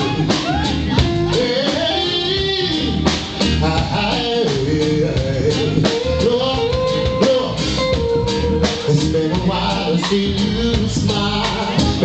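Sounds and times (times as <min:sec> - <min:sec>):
bass: 0:00.0 - 0:12.0
drum kit: 0:00.0 - 0:12.0
electric guitar melody: 0:00.0 - 0:12.0.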